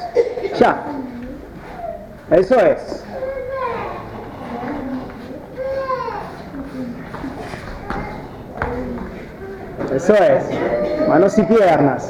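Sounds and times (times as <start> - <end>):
faint voices: 0.0 - 12.0
bare feet on foam mats: 2.9 - 11.4.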